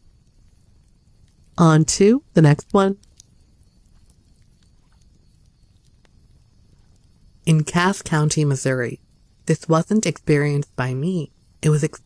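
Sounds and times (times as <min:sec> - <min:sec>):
faint ticks: 0:00.0 - 0:01.6, 0:02.3 - 0:07.6
faint low hum: 0:00.0 - 0:12.0.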